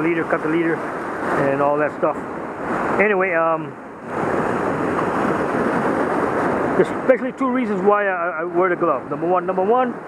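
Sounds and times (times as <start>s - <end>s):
ocean surf on rocky shore: 0.0s - 10.0s.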